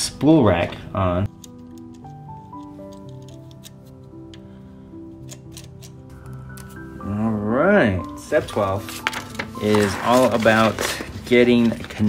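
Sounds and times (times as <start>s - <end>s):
plastic parts clicking: 1.3s - 4.5s.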